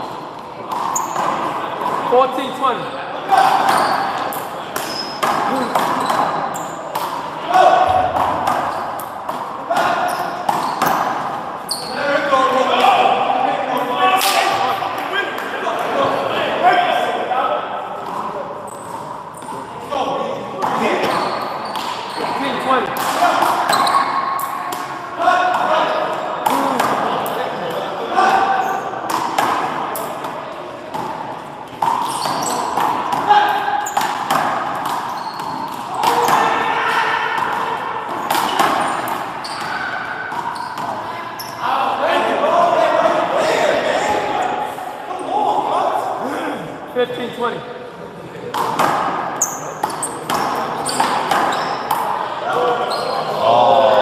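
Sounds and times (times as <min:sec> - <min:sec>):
indistinct voices: 0:49.5 - 0:54.0.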